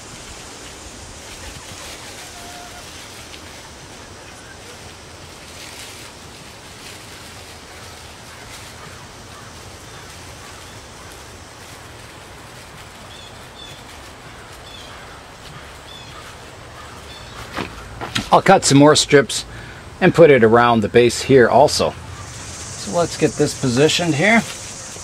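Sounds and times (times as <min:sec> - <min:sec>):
outdoor background noise: 0:00.0 - 0:25.0.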